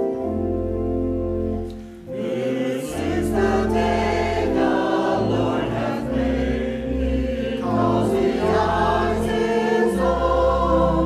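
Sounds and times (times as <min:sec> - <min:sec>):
low organ notes: 0:00.0 - 0:11.0
choir singing a hymn: 0:02.0 - 0:11.0.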